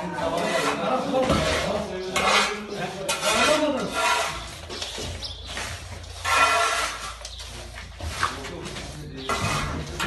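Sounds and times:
rubbish scraped across floor: 0:00.3 - 0:10.0.

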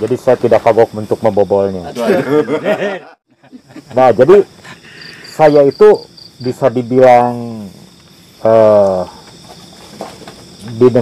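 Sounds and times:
man speaking: 0:00.0 - 0:03.0, 0:03.9 - 0:04.6, 0:05.4 - 0:07.8, 0:08.4 - 0:09.2, 0:10.6 - 0:11.0
crickets chirping: 0:00.0 - 0:11.0.

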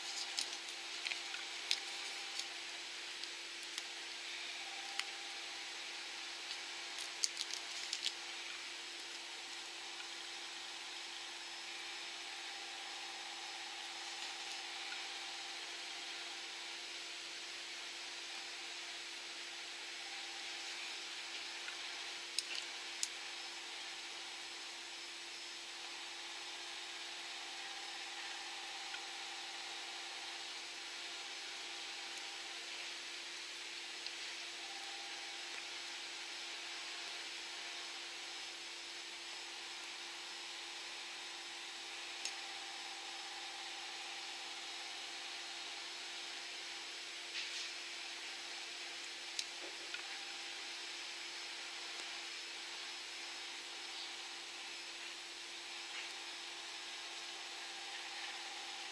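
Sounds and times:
background hiss: 0:00.0 - 0:58.9
faint hum: 0:00.0 - 0:58.9.

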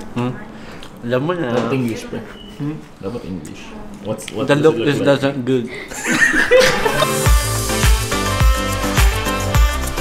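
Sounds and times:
man chuckling and laughing: 0:05.9 - 0:07.3.

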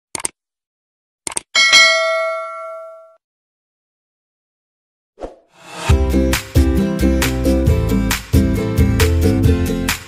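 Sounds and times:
notification bell chime: 0:01.6 - 0:03.2
brief swish: 0:05.2 - 0:05.9.

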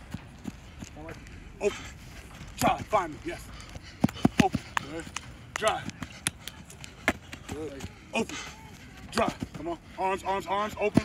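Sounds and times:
footsteps running on artificial turf: 0:00.0 - 0:11.0.

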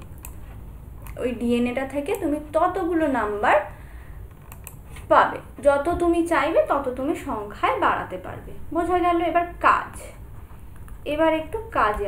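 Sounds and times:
woman speaking: 0:01.2 - 0:03.7, 0:05.1 - 0:10.2, 0:11.0 - 0:12.0.

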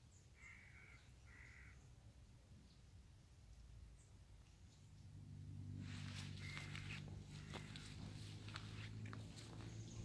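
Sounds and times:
faint bird cawing: 0:00.3 - 0:02.0, 0:05.9 - 0:10.0.

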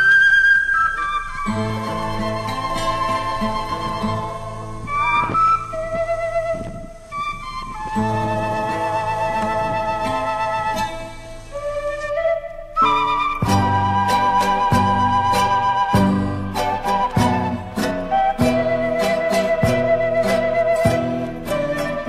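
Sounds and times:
flute melody: 0:00.0 - 0:22.0.

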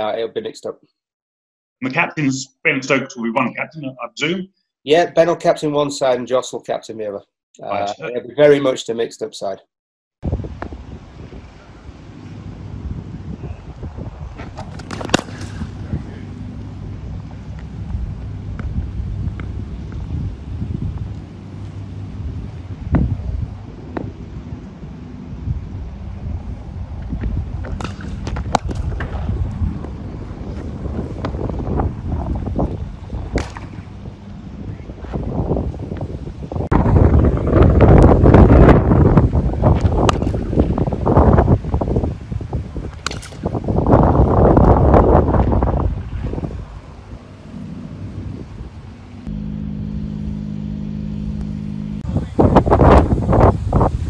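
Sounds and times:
wind buffeting microphone: 0:10.2 - 0:49.3, 0:52.0 - 0:54.0
steady low hum: 0:10.3 - 0:42.1, 0:43.0 - 0:54.0
cricket bat hitting ball: 0:14.5 - 0:15.8, 0:40.0 - 0:40.5, 0:43.0 - 0:43.4.

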